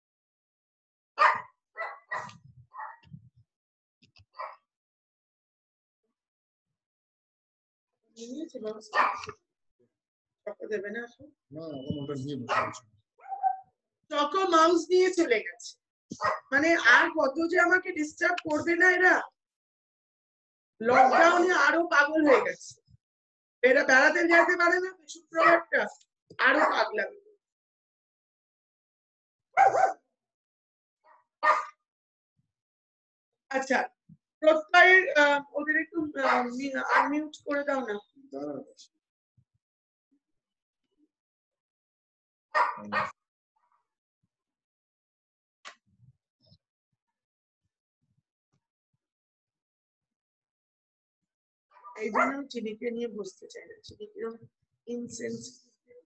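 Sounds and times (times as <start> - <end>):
dog barking: 1.2 - 3.1, 4.4 - 4.6, 9.0 - 9.3, 12.5 - 13.6, 16.2 - 16.5, 20.9 - 21.5, 25.4 - 25.7, 26.5 - 26.9, 29.6 - 30.0, 31.4 - 31.8, 36.2 - 37.2, 42.6 - 43.2, 51.8 - 52.4.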